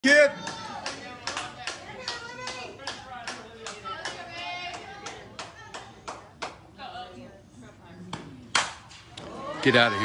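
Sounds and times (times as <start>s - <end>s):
people clapping in rhythm: 0.5s - 6.6s.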